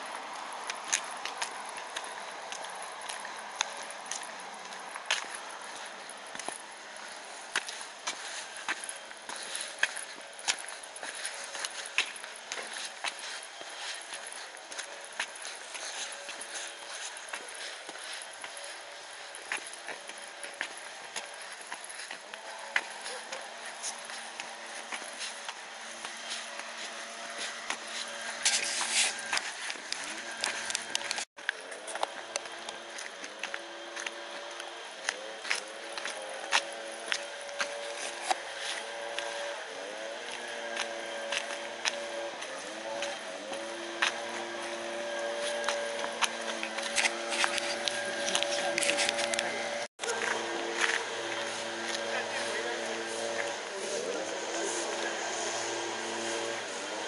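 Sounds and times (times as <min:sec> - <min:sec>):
distant voices: 0:00.0 - 0:57.0
footsteps on paved path: 0:00.0 - 0:57.0
steady outdoor hiss: 0:00.0 - 0:57.0.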